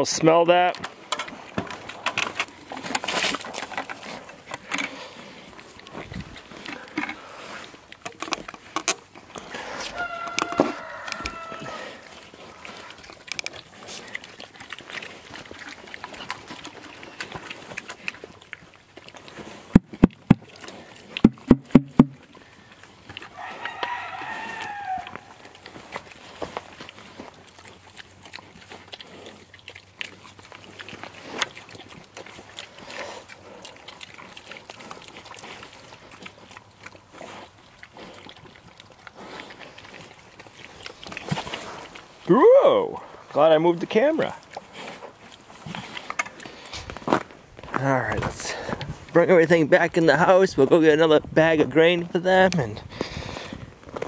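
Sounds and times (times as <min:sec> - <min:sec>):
pigs chewing and rooting: 0:00.0 - 0:54.0
rooster crowing: 0:09.5 - 0:12.0, 0:23.3 - 0:25.4
sharp knocks: 0:21.2 - 0:22.2.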